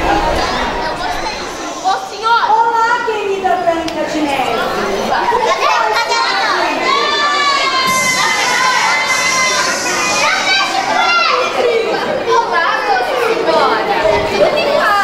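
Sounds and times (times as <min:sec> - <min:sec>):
children shouting together: 0:04.5 - 0:15.0.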